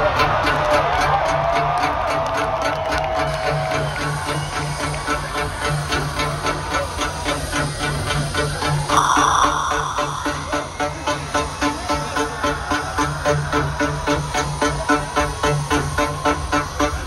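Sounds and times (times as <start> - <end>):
long high tone: 9.0 - 11.5.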